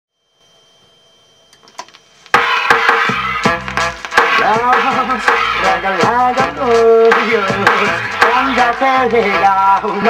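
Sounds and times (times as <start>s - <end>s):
vinyl clicks: 1.5s - 2.4s
vinyl hiss: 1.9s - 6.1s
music with heavy bass and beats: 2.2s - 10.0s.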